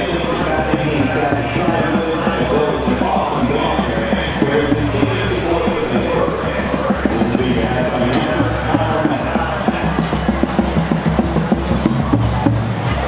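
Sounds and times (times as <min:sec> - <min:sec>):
marching band playing sustained chords: 0:00.0 - 0:13.0.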